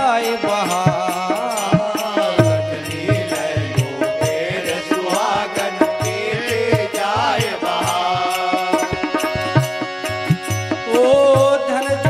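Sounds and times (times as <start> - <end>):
devotional music melody: 0.0 - 12.0.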